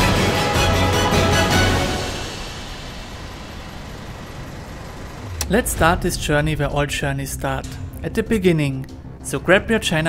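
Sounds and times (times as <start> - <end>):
distant traffic rumble: 2.3 - 10.0.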